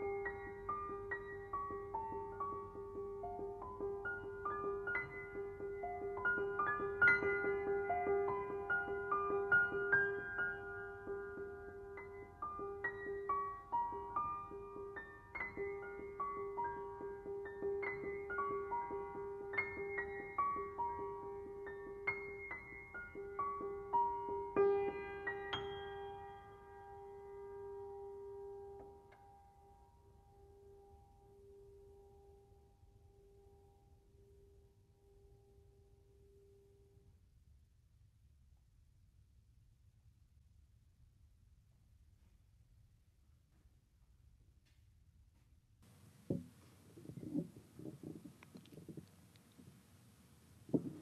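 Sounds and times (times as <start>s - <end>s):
soft piano notes: 0.0s - 34.0s, 45.9s - 51.0s
faint low rumbles: 42.0s - 51.0s.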